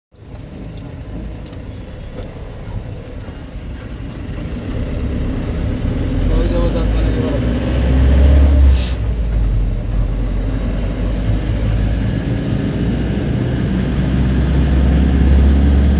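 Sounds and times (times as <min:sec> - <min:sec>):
road noise inside cab: 0:00.1 - 0:15.9
truck engine rumble: 0:00.1 - 0:15.9
brief hiss: 0:08.7 - 0:09.1.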